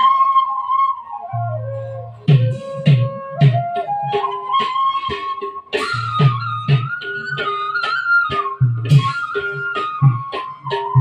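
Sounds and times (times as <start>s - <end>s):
sliding flute-like melody: 0.0s - 11.0s
steady drum beat: 2.3s - 3.9s, 8.6s - 11.0s.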